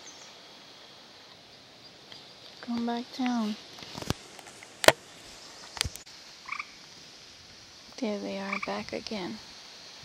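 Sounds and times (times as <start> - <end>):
toad chirp: 5.8 - 6.8, 8.4 - 8.9.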